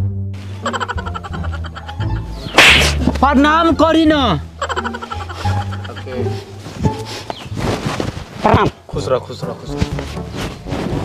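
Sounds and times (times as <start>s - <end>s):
background music: 0.0s - 11.0s
sharp whip-like swish: 2.5s - 3.0s.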